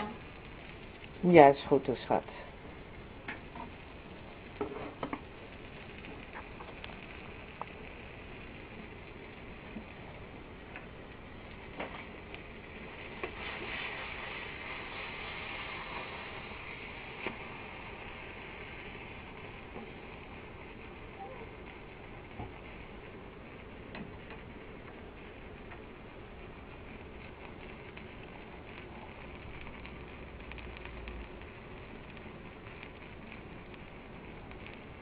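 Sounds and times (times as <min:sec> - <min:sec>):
fat sizzling in frying pan: 0:00.0 - 0:35.0
sharp pops and clicks: 0:02.6 - 0:13.9, 0:15.9 - 0:35.0.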